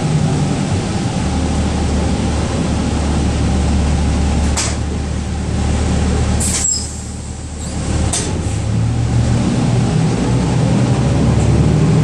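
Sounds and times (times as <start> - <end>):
bus engine humming: 0.0 - 12.0.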